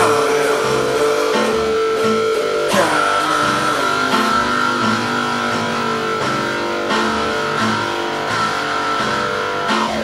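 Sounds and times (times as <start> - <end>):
blues electric guitar with wah: 0.0 - 10.0.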